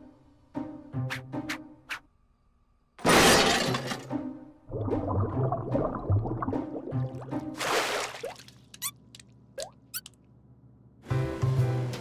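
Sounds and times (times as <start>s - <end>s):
cartoon glass shattering crash: 3.0s - 4.1s.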